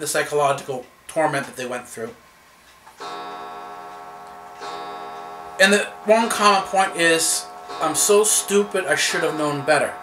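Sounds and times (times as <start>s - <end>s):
steady pitched hum: 3.0s - 10.0s.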